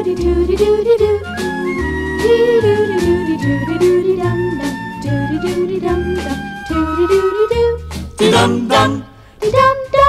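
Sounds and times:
small band with bass line: 0.0 - 9.0
girls singing wordless melody: 0.0 - 10.0.

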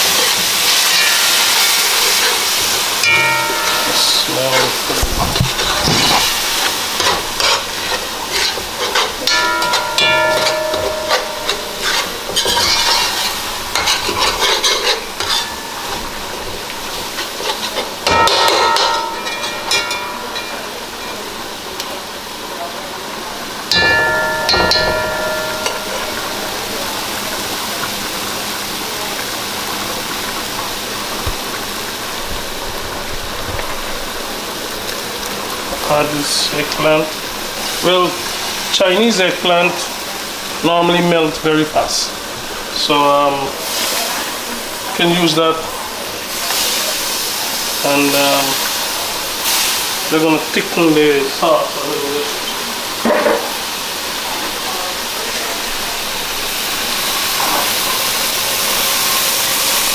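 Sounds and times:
curry sizzling: 0.0 - 59.9
spoon scraping metal pan: 0.8 - 16.1.

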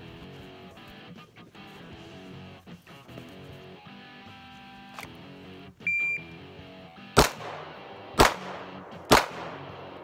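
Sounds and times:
guitar background music: 0.0 - 10.0
shot timer beep: 5.8 - 6.4
pistol shot: 7.2 - 10.0.

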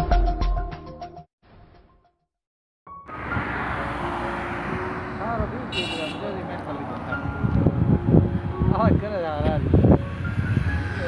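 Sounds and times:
road traffic noise: 2.9 - 11.0.

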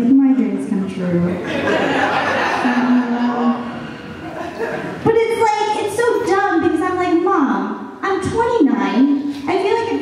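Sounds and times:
audience laughter and murmuring: 1.4 - 5.2.

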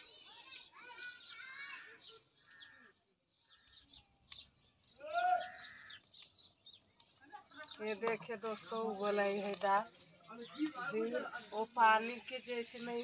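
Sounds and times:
small birds chirping: 0.0 - 13.0
loud pitched bird call: 0.8 - 6.5
sharp clicks: 5.9 - 8.2.

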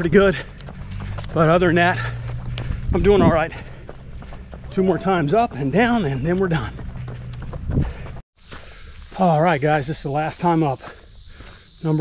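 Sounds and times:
footsteps on paved path: 0.0 - 11.8
wind on microphone: 2.6 - 3.5
insects hissing: 8.4 - 12.0.

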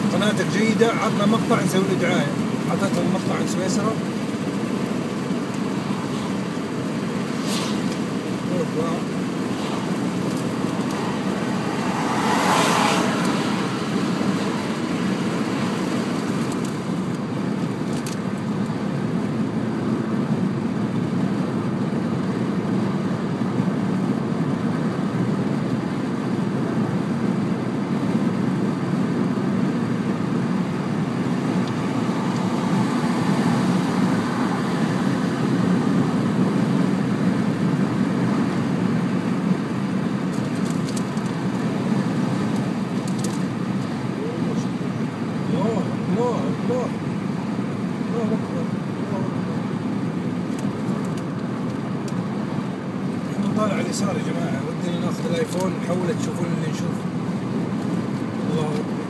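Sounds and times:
car engine hum: 0.0 - 59.0
car road and tyre noise: 0.0 - 59.0.

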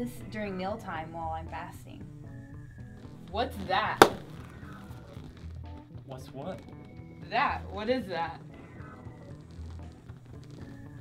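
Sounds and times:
soft background music: 0.0 - 11.0
hand knocking on plastic leg guard: 4.0 - 4.3.

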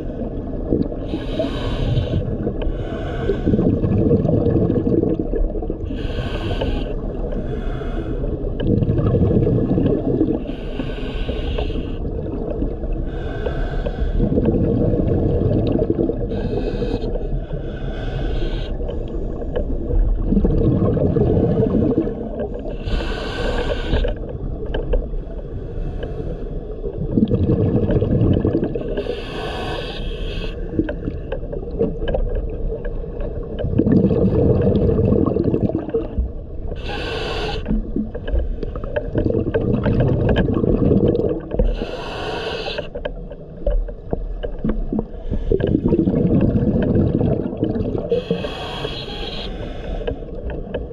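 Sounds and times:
exhaled bubbles rumbling: 0.0 - 17.5, 18.7 - 25.7, 26.5 - 50.9
regulator hissing inhale: 1.0 - 3.6, 5.9 - 8.4, 10.4 - 12.0, 13.0 - 14.3, 16.3 - 19.7, 22.6 - 24.3, 25.2 - 26.8, 29.0 - 30.8, 36.7 - 38.9, 41.6 - 43.0, 48.1 - 50.5.

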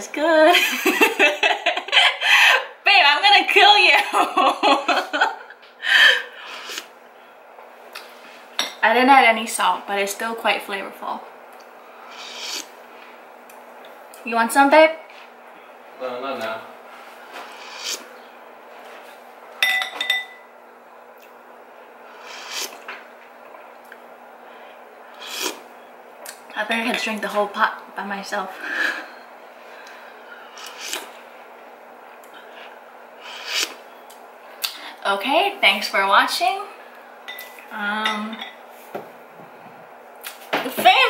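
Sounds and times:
steady low hum: 0.0 - 41.0
ceramic spoon clinking on bowl: 19.6 - 20.4
person sipping soup: 30.6 - 31.1.

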